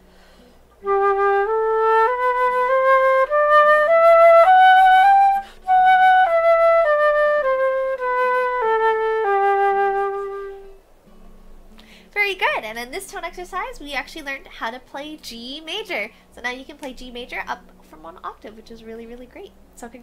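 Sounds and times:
flute playing a scale: 0:00.8 - 0:10.8.

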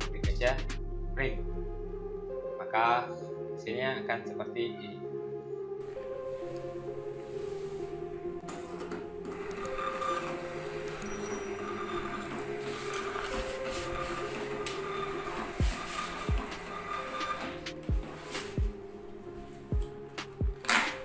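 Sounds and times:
background music: 0:00.0 - 0:21.0
label printer whirring: 0:09.2 - 0:18.6.

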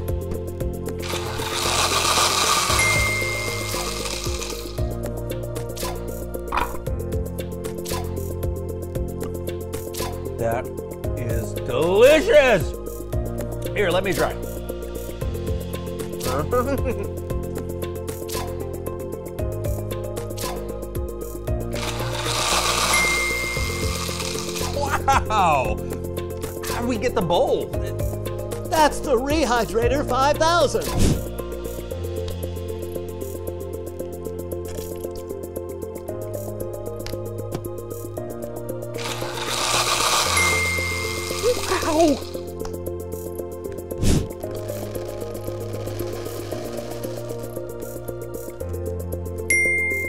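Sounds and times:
background music: 0:00.0 - 0:50.0
whirring whooshing machine noise: 0:01.0 - 0:04.4
hissing blender-like machine noise: 0:01.0 - 0:04.8, 0:21.8 - 0:24.8, 0:39.0 - 0:42.4, 0:44.6 - 0:47.6
high steady tone: 0:02.6 - 0:04.1, 0:40.3 - 0:41.4, 0:49.5 - 0:50.0.

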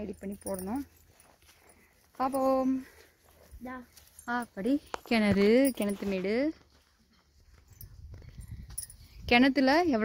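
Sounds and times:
faint outdoor background noise: 0:00.0 - 0:10.0.

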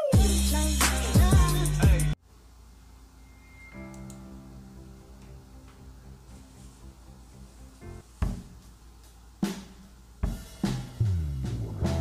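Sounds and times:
soft held chords: 0:00.2 - 0:12.0
drum hits: 0:08.2 - 0:08.8, 0:09.4 - 0:12.0.

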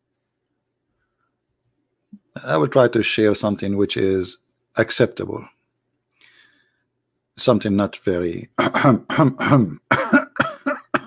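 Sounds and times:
man coughing: 0:08.6 - 0:11.0.

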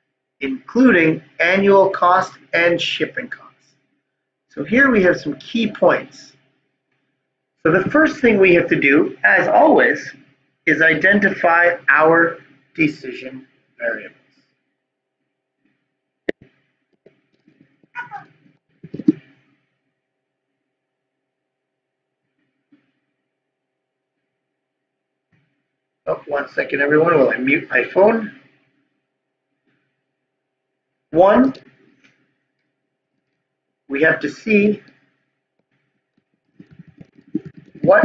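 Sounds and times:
keyboard typing: 0:16.3 - 0:19.3, 0:35.6 - 0:38.0.

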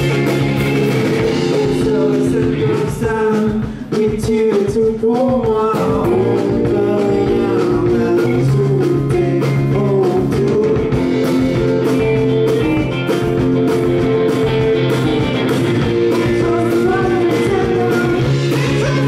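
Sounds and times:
electric guitars: 0:00.0 - 0:04.0, 0:05.4 - 0:19.0
person singing: 0:00.0 - 0:11.3, 0:15.9 - 0:19.0
drum kit: 0:00.0 - 0:19.0.

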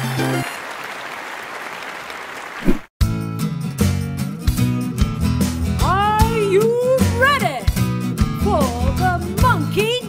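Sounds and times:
applause: 0:00.0 - 0:02.9.

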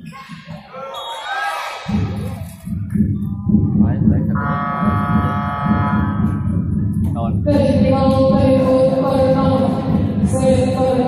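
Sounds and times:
crowd noise and voices: 0:00.0 - 0:11.0
game buzzer long tone: 0:04.4 - 0:06.2.

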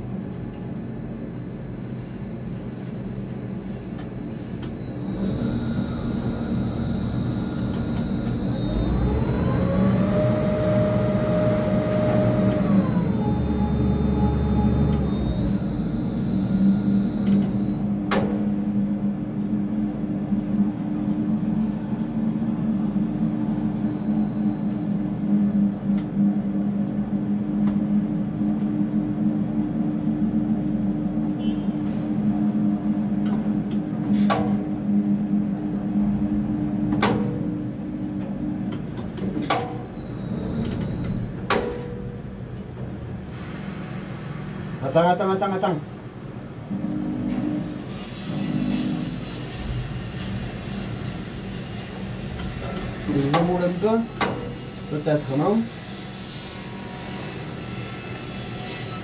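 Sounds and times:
motor whine: 0:00.0 - 0:19.6, 0:34.0 - 0:41.5
crane motors humming: 0:00.0 - 0:44.8.

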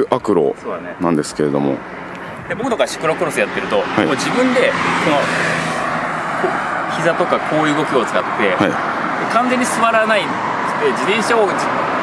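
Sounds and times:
car passing by: 0:01.4 - 0:12.0.

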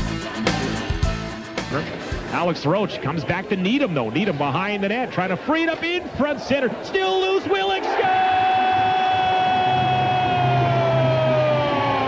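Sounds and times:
loud crowd noise: 0:00.0 - 0:12.0.

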